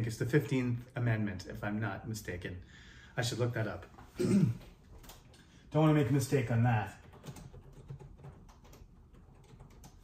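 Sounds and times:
computer keyboard typing: 5.0 - 5.4, 6.3 - 10.0.

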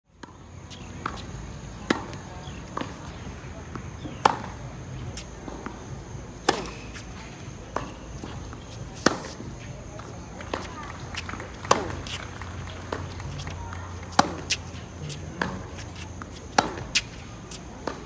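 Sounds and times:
racket hitting tennis ball: 0.2 - 18.0.

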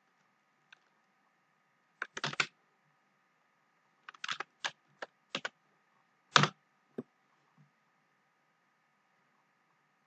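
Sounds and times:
computer keyboard keystrokes: 2.0 - 2.5, 4.0 - 5.6, 6.3 - 6.6.

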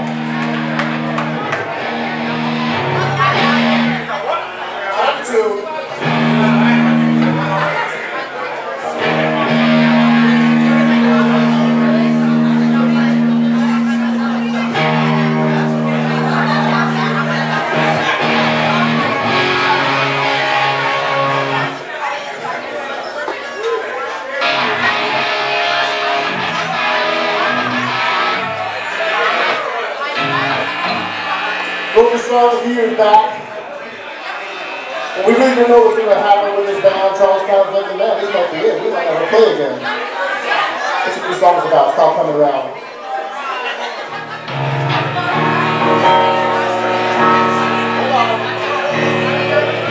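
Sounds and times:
electric guitar ringing chords: 0.0 - 4.2, 5.9 - 8.0, 8.8 - 21.9, 24.4 - 39.8, 44.0 - 49.9
live rock band playing: 0.0 - 4.2, 5.9 - 8.0, 8.8 - 21.9, 24.4 - 37.5, 43.9 - 49.9.

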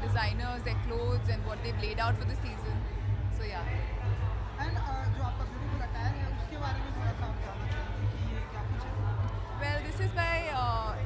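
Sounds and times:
faint voices chattering: 0.0 - 11.0
music with heavy pulsing bass: 0.0 - 11.0.

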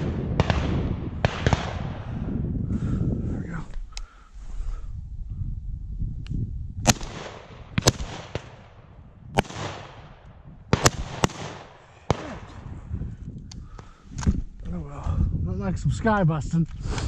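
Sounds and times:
distant shotgun shots: 0.0 - 2.1, 6.8 - 12.6
loud shotgun shots with echo: 0.0 - 2.1, 6.8 - 12.7.

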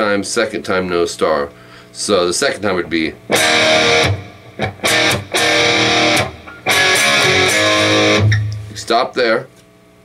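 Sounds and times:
electric guitar strumming chords: 2.6 - 9.1.

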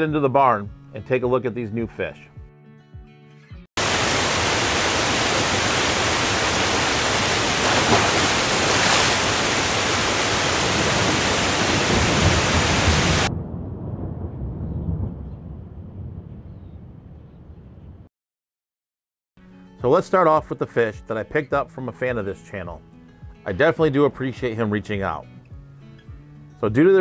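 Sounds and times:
rushing water hiss: 3.8 - 13.3
low rumble: 12.2 - 18.1.

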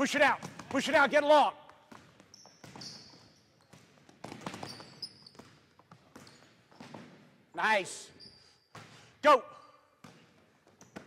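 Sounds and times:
basketball bouncing on wooden floor: 0.1 - 7.4, 10.0 - 11.0
sneakers squeaking on floor: 0.1 - 11.0.

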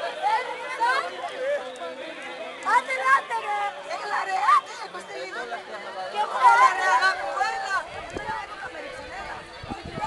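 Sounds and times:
young people talking and calling out: 0.0 - 10.0.

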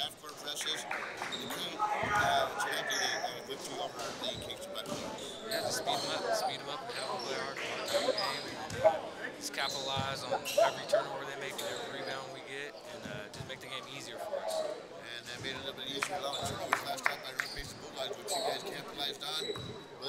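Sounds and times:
indistinct chatter: 0.0 - 20.0.

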